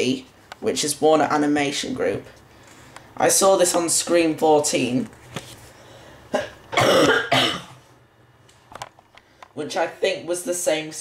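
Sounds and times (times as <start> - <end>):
person coughing: 6.3 - 7.9.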